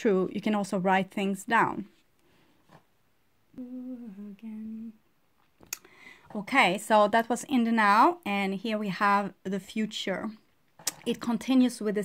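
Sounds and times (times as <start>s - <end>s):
woman humming: 3.5s - 5.0s.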